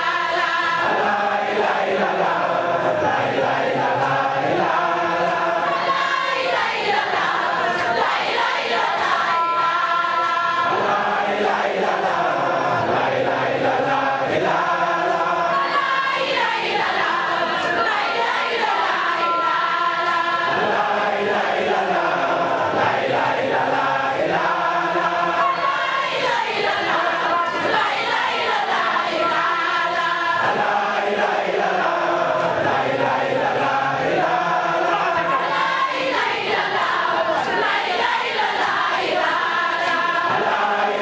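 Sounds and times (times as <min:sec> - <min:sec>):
congregation chanting: 0:00.0 - 0:41.0.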